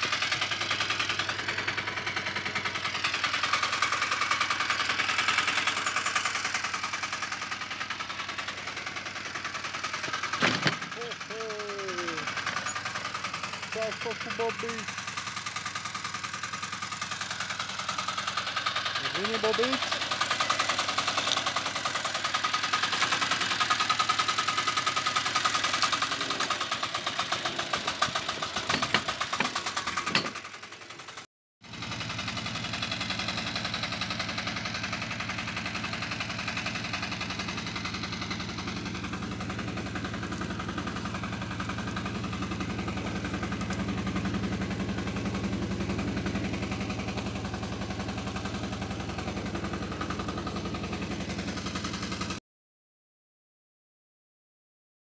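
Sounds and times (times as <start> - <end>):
walking tractor engine running: 0.0 - 52.4.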